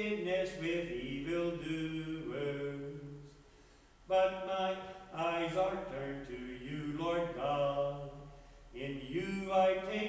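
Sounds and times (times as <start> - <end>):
man chanting: 0.0 - 3.4, 4.1 - 10.0.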